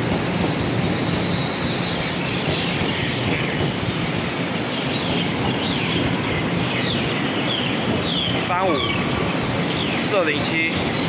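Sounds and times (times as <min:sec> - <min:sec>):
train wheel-on-rail rumble: 0:00.0 - 0:11.0.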